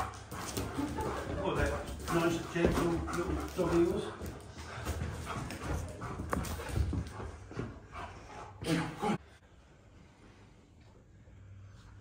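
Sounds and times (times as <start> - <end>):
paws thudding on wooden floor: 0.0 - 8.6.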